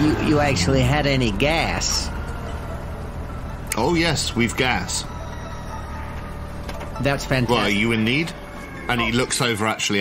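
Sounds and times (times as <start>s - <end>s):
low ambient drone: 0.0s - 10.0s.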